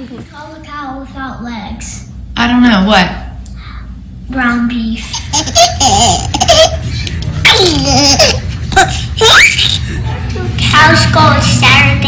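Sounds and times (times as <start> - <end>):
baby laughing: 5.0 - 10.0.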